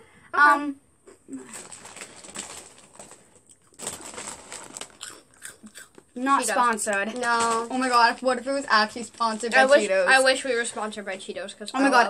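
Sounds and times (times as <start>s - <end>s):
chips being crunched and chewed: 1.4s - 8.0s.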